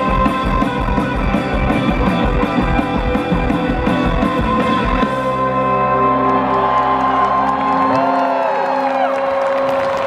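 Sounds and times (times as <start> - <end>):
crowd cheering and whooping: 1.8 - 10.0.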